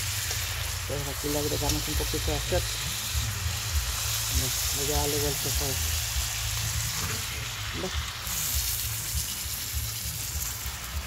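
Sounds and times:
chicken sizzling on hot griddle: 0:00.0 - 0:11.0.

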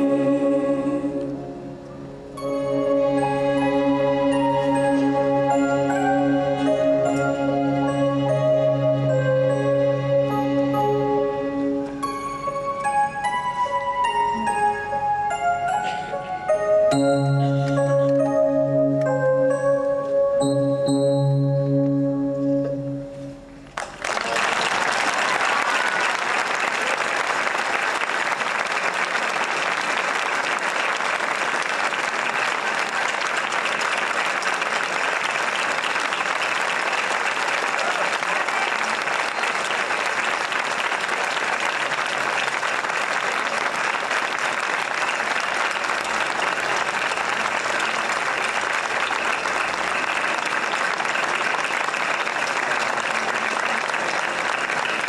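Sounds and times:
audience applauding: 0:23.7 - 0:55.0
choir clapping: 0:23.7 - 0:55.0.

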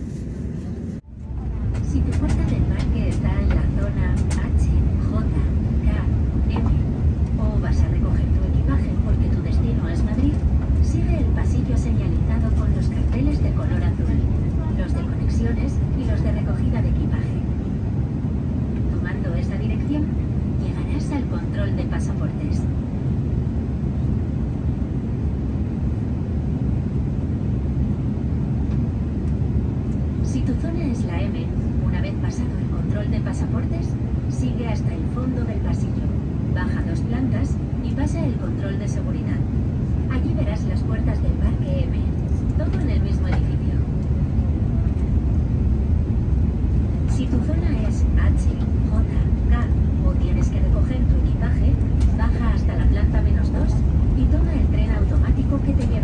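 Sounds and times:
airplane cabin rumble: 0:00.0 - 0:56.0.

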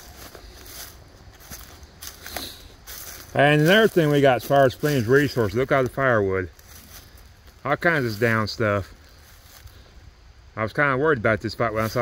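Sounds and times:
footsteps crunching dry leaves: 0:00.0 - 0:10.0, 0:11.6 - 0:12.0.

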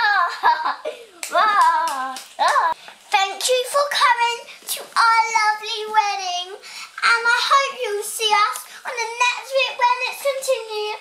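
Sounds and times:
hands clapping: 0:01.2 - 0:02.8.

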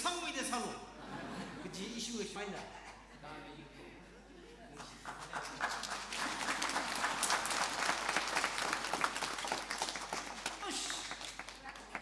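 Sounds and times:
audience applauding: 0:04.8 - 0:12.0.

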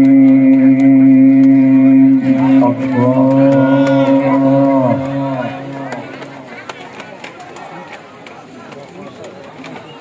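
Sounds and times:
man reciting melodic note over pa: 0:00.0 - 0:06.2.

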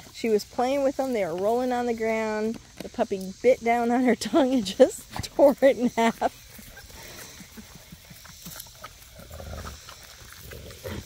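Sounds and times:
dogs and puppies: 0:00.0 - 0:11.0
high buzz of insects: 0:00.0 - 0:11.0.

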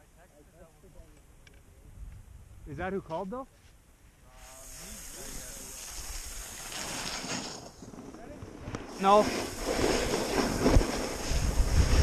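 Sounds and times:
snowboard scraping over snow: 0:04.6 - 0:12.0
wind on microphone: 0:07.8 - 0:12.0.

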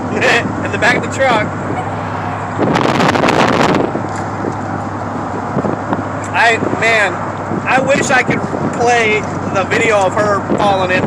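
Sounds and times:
truck and road hum: 0:00.0 - 0:11.0
wind buffeting microphone: 0:00.4 - 0:11.0.

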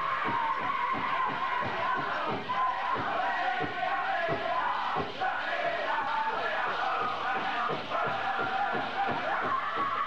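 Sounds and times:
high-pitched singers' voices: 0:00.0 - 0:10.0.

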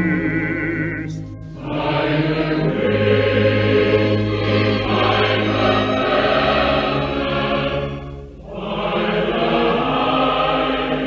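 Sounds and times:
chorus singing with orchestra: 0:00.0 - 0:11.0.

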